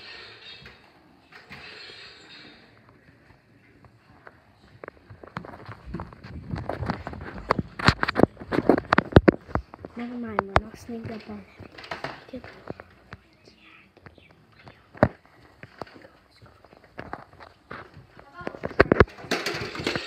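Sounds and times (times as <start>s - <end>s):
footsteps on wooden stairs: 9.4s - 13.1s.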